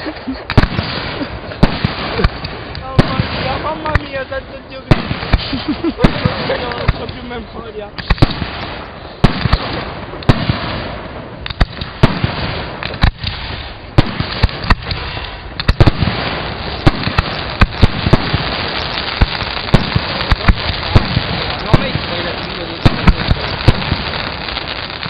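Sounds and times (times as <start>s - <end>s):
fireworks bursting: 0.0s - 25.0s
noisy wash from fireworks: 0.0s - 25.0s.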